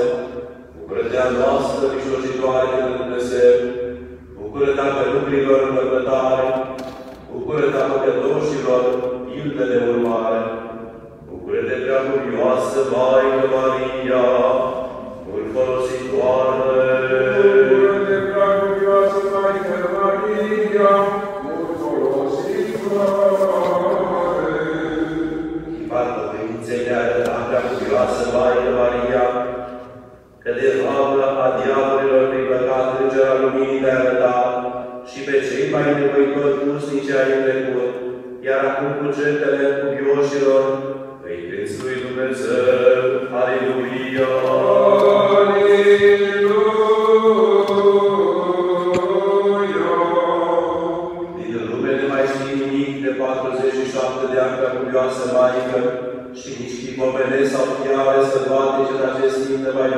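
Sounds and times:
person chanting a hymn: 0:00.0 - 0:59.9.

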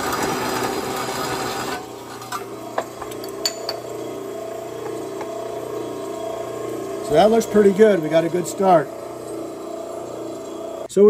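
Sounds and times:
saw grinding through metal: 0:00.0 - 0:10.9
saw motor humming: 0:00.0 - 0:10.9.

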